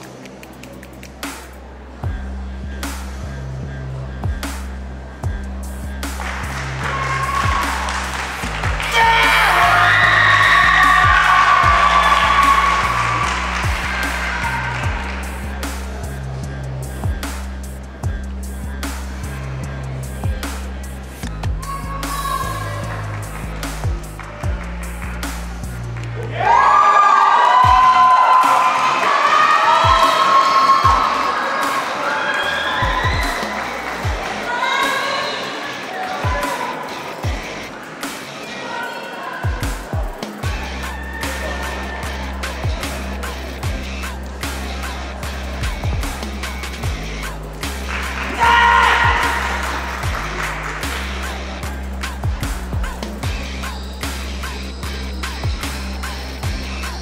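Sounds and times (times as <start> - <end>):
music with heavy bass beat: 0.0 - 26.8, 27.6 - 32.0, 32.6 - 57.0
crowd cheering and shouting: 6.0 - 57.0
loud shout: 6.6 - 16.1, 21.6 - 23.2, 26.2 - 53.4.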